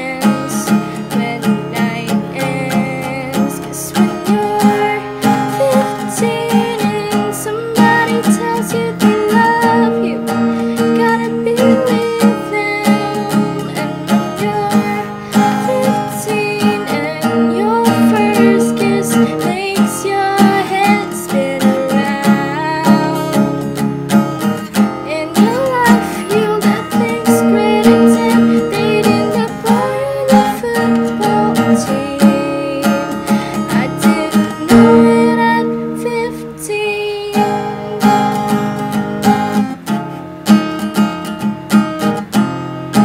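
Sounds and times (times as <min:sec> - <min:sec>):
acoustic guitar strumming: 0:00.0 - 0:43.0.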